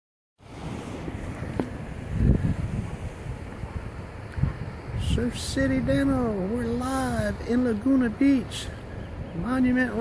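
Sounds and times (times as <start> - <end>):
surf washing over rocks: 0.4 - 10.0
wind buffeting microphone: 0.4 - 10.0.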